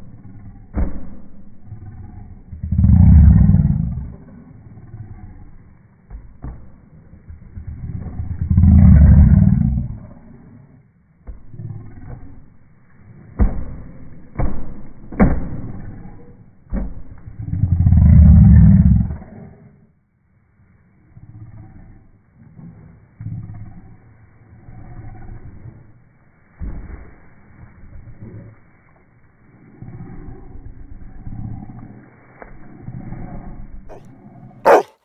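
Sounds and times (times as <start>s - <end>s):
dog growling: 1.5s - 6.0s, 7.1s - 10.8s, 17.3s - 19.9s, 21.0s - 26.0s, 29.5s - 35.0s.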